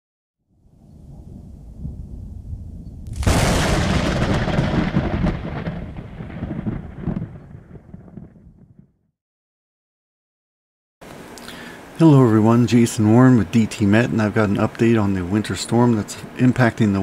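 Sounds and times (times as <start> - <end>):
thunder rumbling and cracking: 0.9 - 9.0.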